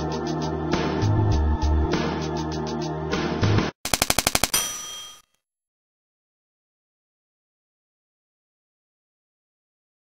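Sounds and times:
background music: 0.0s - 3.8s
typewriter bell ding: 4.4s - 5.4s.

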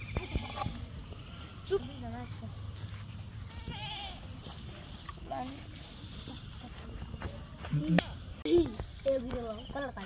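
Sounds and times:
goat bleating: 0.0s - 1.6s, 3.5s - 4.3s.

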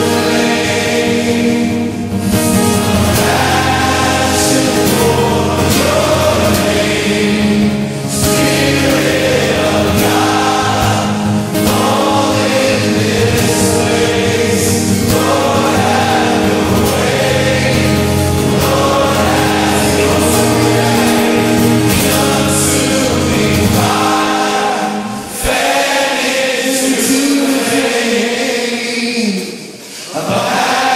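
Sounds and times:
band playing worship music: 0.0s - 30.9s
choir singing: 0.0s - 30.9s.

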